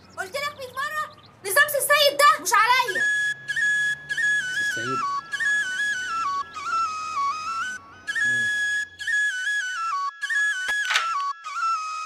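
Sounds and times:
whistled melody: 0:02.8 - 0:12.0.

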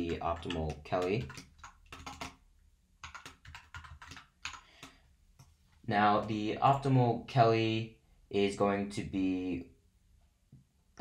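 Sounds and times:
keyboard typing: 0:00.0 - 0:02.4, 0:03.0 - 0:05.0.

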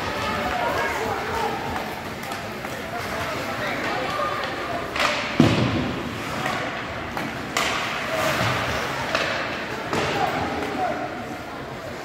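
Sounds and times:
spectators chatter: 0:00.0 - 0:12.0
hockey stick crack: 0:01.7 - 0:10.8.

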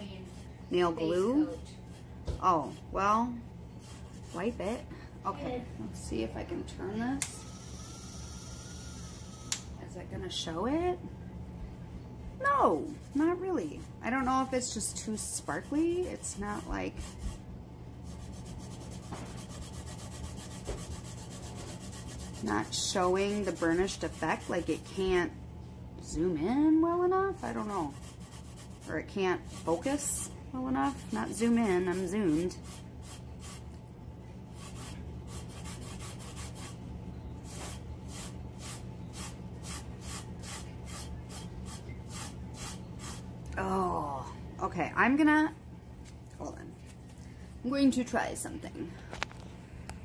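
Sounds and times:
gloved hand rubbing tumbler: 0:18.0 - 0:25.0, 0:27.4 - 0:33.7, 0:34.5 - 0:36.8, 0:37.4 - 0:43.2.

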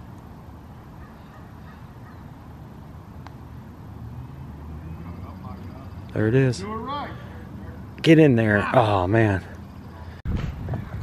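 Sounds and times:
faint distant voices: 0:04.4 - 0:10.2.

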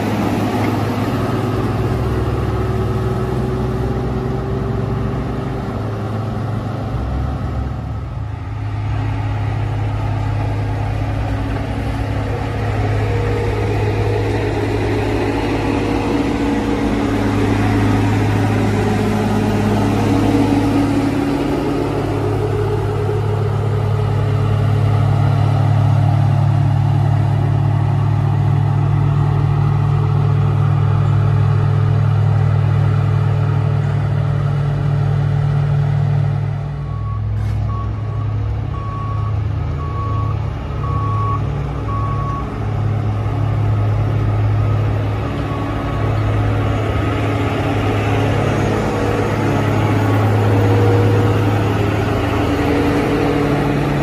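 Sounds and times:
diesel engine under load: 0:00.0 - 0:54.0
reversing alarm beeping: 0:36.8 - 0:42.6.

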